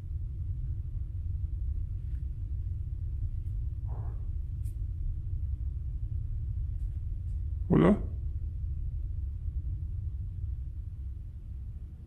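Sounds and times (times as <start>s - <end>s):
low steady rumble: 0.0s - 12.0s.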